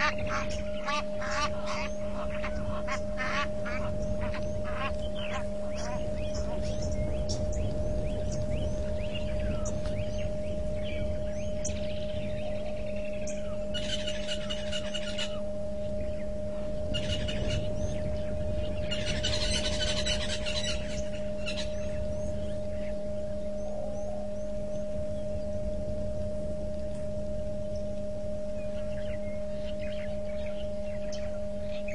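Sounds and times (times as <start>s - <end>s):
buzzing bursts: 0.0s - 31.9s
low rumble: 0.0s - 31.9s
two-note electrical hum: 0.0s - 31.9s.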